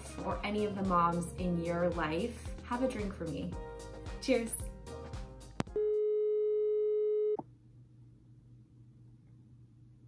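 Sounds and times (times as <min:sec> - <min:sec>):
electronic test tone: 0:05.7 - 0:07.4.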